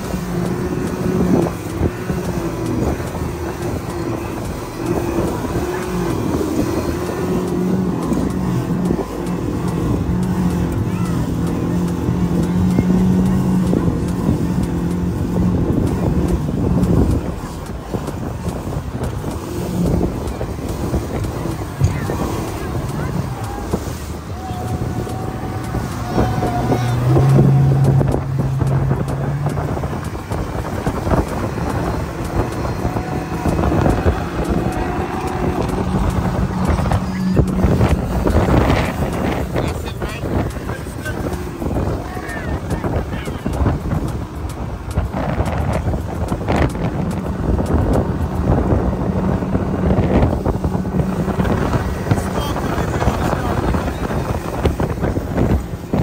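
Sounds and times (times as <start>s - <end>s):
outboard motor running: 0.0s - 56.0s
water rushing: 0.0s - 56.0s
wind buffeting microphone: 0.0s - 56.0s.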